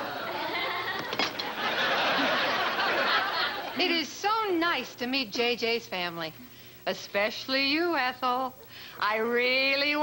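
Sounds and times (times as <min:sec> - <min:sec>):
audience laughing: 0:00.0 - 0:04.0.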